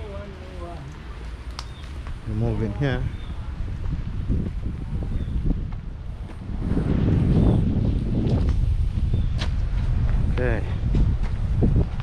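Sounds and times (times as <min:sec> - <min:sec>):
wind buffeting microphone: 0:01.4 - 0:12.0.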